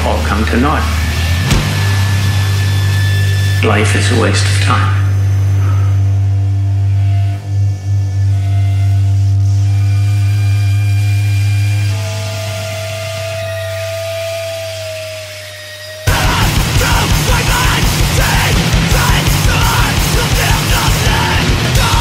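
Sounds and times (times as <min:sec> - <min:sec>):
low electrical hum drone: 0:00.0 - 0:15.4
high sustained feedback tone: 0:00.0 - 0:22.0.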